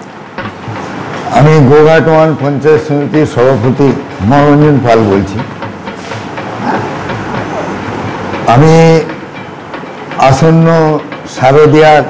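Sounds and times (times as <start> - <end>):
steady background noise: 0.0 - 12.0
man speaking into microphone: 1.3 - 5.5, 8.5 - 9.2, 10.2 - 12.0.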